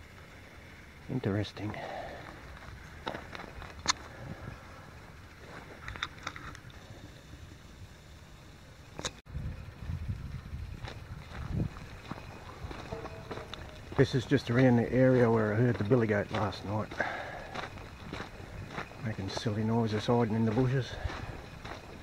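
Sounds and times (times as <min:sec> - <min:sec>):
low handling rumble: 0:00.0 - 0:22.0
footsteps on dirt track: 0:01.8 - 0:06.2, 0:09.6 - 0:22.0.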